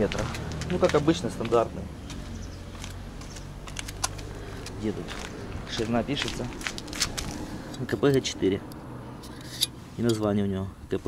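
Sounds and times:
footsteps on asphalt: 0:00.0 - 0:07.8.

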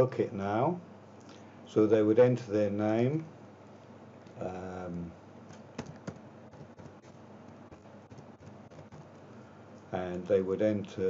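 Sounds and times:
computer keyboard keystrokes: 0:05.5 - 0:09.2.

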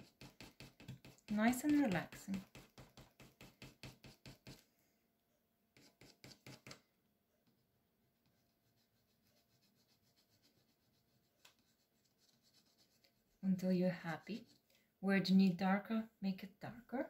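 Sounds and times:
pencil scratching on board: 0:00.0 - 0:04.6, 0:05.8 - 0:06.8, 0:08.2 - 0:13.4, 0:14.1 - 0:14.7.

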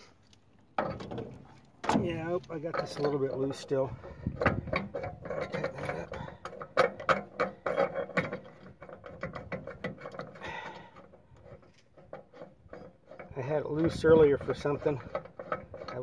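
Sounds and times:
metallic clicking and rattling: 0:00.8 - 0:16.0.

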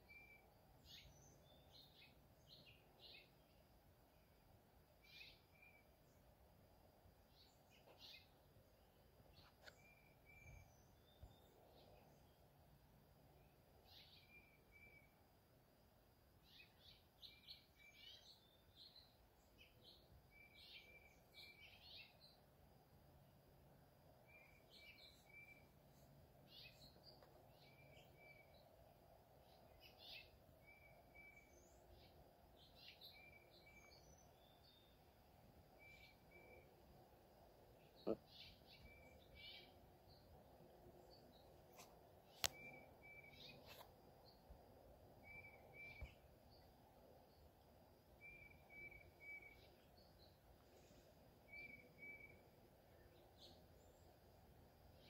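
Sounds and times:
bird chirps: 0:00.0 - 0:03.6, 0:05.0 - 0:06.2, 0:07.3 - 0:08.4, 0:09.3 - 0:12.4, 0:13.4 - 0:15.2, 0:16.4 - 0:22.4, 0:24.2 - 0:28.8, 0:29.4 - 0:35.0, 0:35.7 - 0:36.8, 0:37.8 - 0:44.5, 0:45.2 - 0:46.7, 0:48.2 - 0:54.1.

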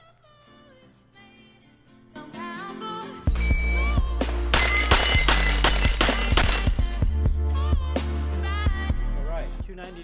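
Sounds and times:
background music: 0:00.0 - 0:10.0
rifle shots: 0:04.5 - 0:06.8
steel plates ringing: 0:04.5 - 0:07.0.

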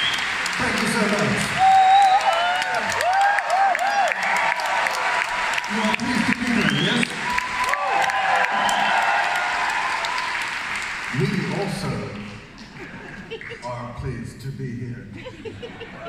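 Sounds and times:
audience cheering and whistling: 0:00.0 - 0:00.6, 0:01.4 - 0:10.7
audience clapping: 0:00.0 - 0:13.9.

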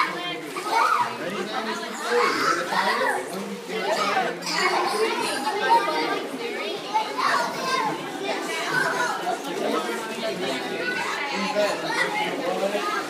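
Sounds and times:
children and adults chattering: 0:00.0 - 0:13.0.

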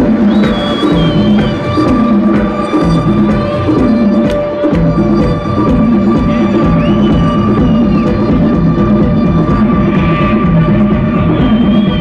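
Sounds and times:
electronic dance music: 0:00.0 - 0:12.0
repeating bass beat: 0:00.0 - 0:12.0.

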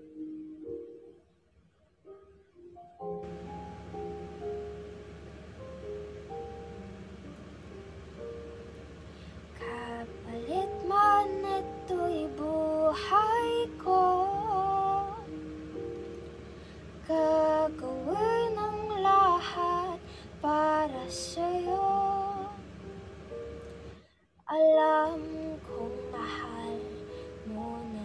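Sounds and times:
backing track of sustained chords: 0:00.0 - 0:28.0
young woman singing: 0:09.6 - 0:15.4, 0:17.0 - 0:22.6, 0:24.5 - 0:28.0.

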